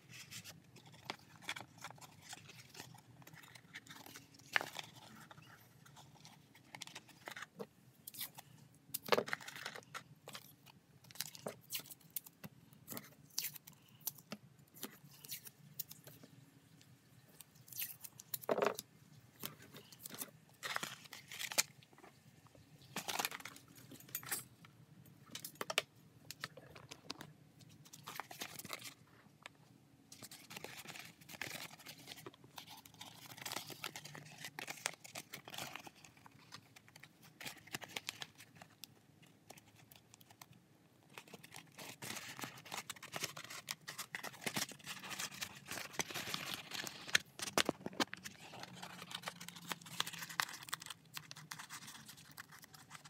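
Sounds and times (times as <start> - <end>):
stiff paper crinkling: 19.4 - 22.0, 30.2 - 53.0.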